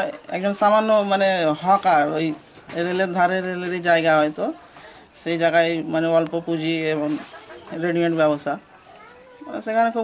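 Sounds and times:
young man speaking: 0.0 - 8.8, 9.4 - 10.0.

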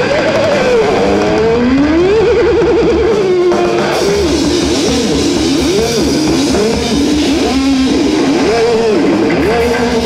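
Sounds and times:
distorted lead electric guitar: 0.0 - 10.0
drums: 0.0 - 10.0
rhythm guitar: 0.0 - 10.0.

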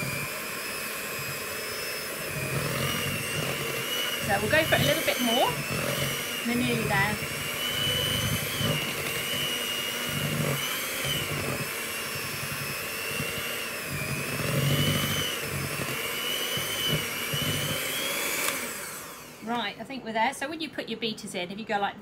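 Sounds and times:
electric hand mixer whining: 0.0 - 19.9.

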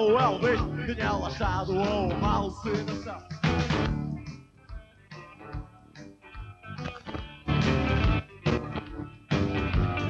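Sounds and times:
rock band playing: 0.0 - 10.0
picked electric guitar notes: 5.2 - 10.0.

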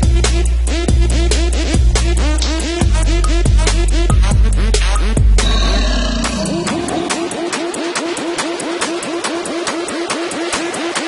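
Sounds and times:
electronic dance music: 2.2 - 11.0.

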